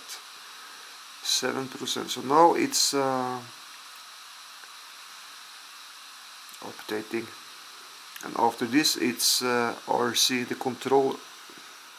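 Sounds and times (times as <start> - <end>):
faint steady hiss: 0.0 - 11.9.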